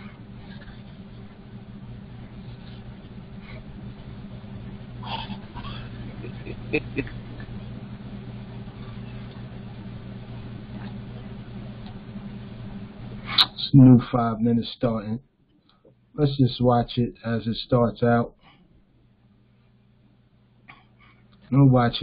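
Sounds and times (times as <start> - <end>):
low background hum: 0.0 - 22.0.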